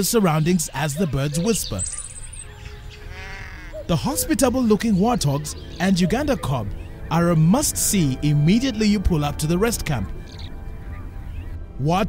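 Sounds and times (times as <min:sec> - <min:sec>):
soft background music: 0:00.0 - 0:12.0
high animal call: 0:00.3 - 0:07.9.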